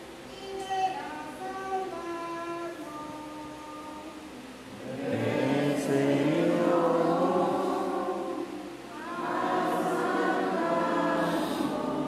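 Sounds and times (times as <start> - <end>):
congregation singing: 4.7 - 12.0
church hymn held note: 5.0 - 12.0.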